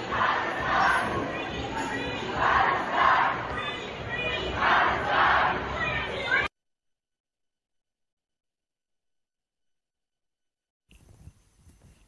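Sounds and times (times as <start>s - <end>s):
crowd shouting together: 0.0s - 6.5s.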